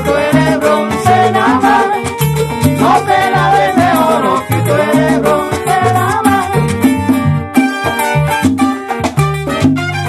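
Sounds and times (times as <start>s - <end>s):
bass line: 0.0s - 10.0s
congas: 0.0s - 10.0s
strummed acoustic guitar: 0.0s - 10.0s
trumpets: 9.5s - 10.0s.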